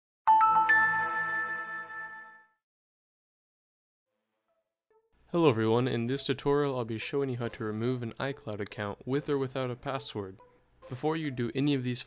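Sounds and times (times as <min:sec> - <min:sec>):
rising bell-like chime: 0:00.3 - 0:02.5.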